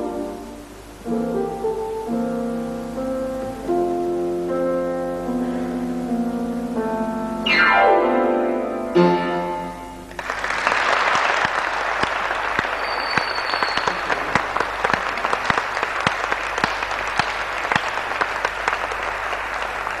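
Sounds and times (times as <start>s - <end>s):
piano chord: 0.0s - 10.2s
audience applause: 10.0s - 20.0s.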